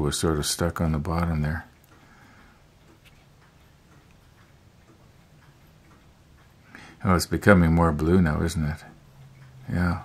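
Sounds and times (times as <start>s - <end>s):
low steady hum: 0.0s - 10.0s
faint light ticks: 0.7s - 10.0s.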